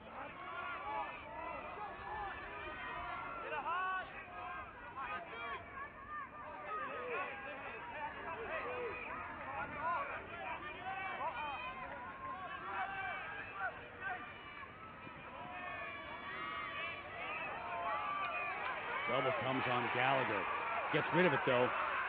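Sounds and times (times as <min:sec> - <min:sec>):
voices shouting and calling out: 0:00.0 - 0:22.0.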